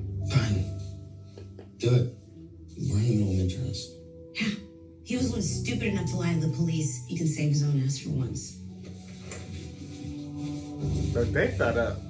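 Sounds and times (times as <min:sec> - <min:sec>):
soft background music low tones: 0:00.0 - 0:12.0.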